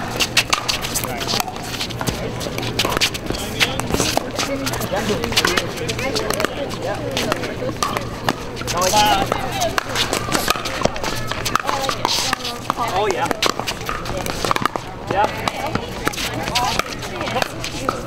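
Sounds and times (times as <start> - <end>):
chatter of players: 0.0 - 18.0
paddles striking plastic ball: 9.1 - 14.8.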